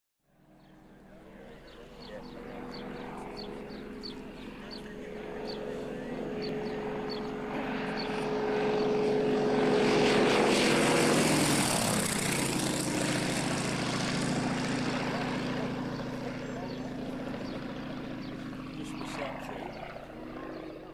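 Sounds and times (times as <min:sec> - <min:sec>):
propeller plane engine flypast: 0:00.2 - 0:20.9.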